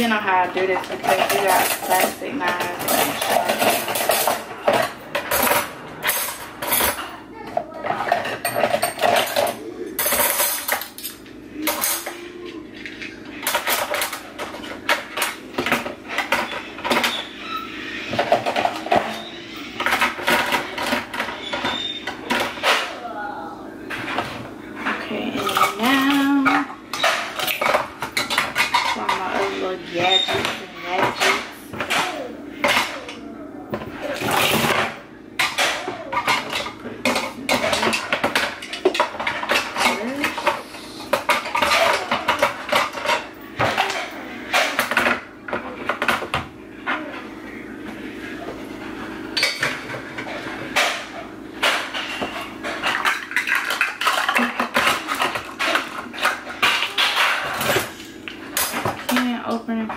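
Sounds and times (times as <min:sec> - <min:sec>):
cutlery clinking and clattering: 0:00.0 - 0:23.0, 0:23.9 - 0:47.2, 0:49.3 - 0:59.9.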